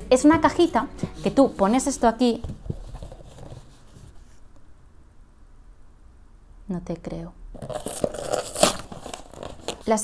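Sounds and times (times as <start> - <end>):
cardboard box rustling and scraping: 1.2 - 4.3, 7.6 - 9.8.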